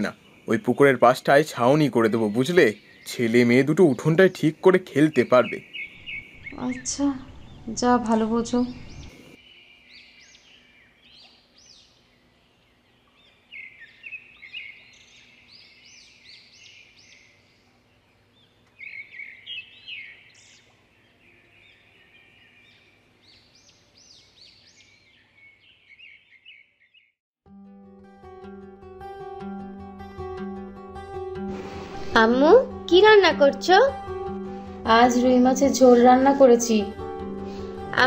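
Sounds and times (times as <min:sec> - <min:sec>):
small songbirds chirping: 0:00.0 - 0:27.2.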